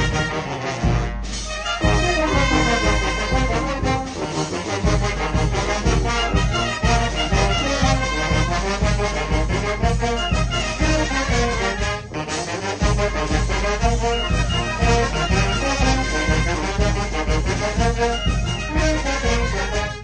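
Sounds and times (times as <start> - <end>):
wind band playing: 0.0 - 20.0
steady low bass pulse: 4.7 - 20.0.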